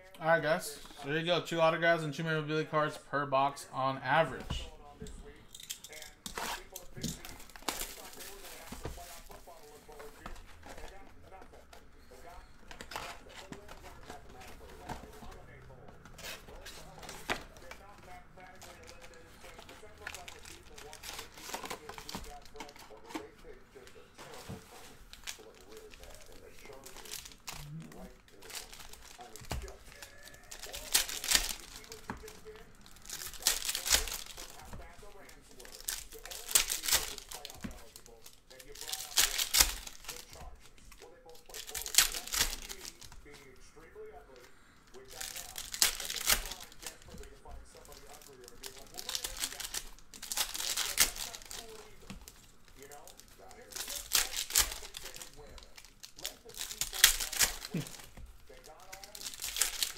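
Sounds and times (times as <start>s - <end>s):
card wrappers tearing and crinkling: 4.1s - 59.9s.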